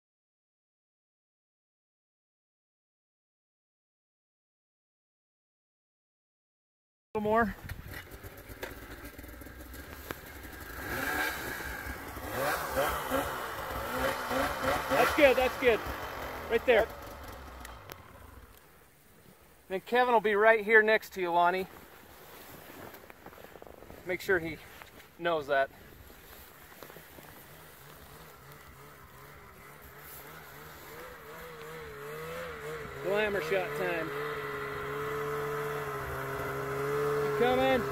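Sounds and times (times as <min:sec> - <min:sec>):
snowmobile engine idling: 0:07.2 - 0:37.9.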